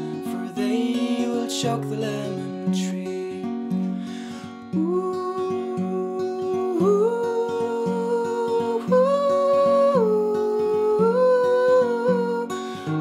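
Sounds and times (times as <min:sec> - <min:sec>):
man singing wordless melody: 0:00.0 - 0:03.7, 0:04.7 - 0:12.6
acoustic guitar strumming: 0:00.0 - 0:13.0.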